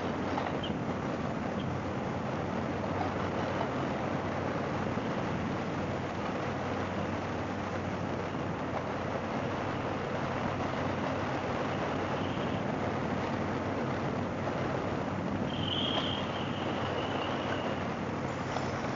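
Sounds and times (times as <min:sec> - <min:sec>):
motorcycle engine cruising: 0:00.0 - 0:18.9
road noise: 0:00.0 - 0:18.9
wind rush: 0:00.0 - 0:18.9.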